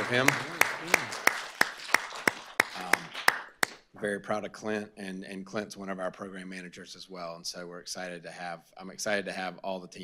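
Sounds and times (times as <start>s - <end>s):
close hand clapping: 0.0s - 3.9s.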